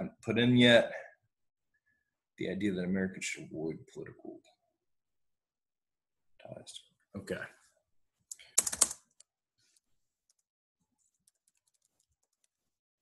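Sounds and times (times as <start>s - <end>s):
computer keyboard typing: 8.3s - 9.3s, 11.1s - 12.6s.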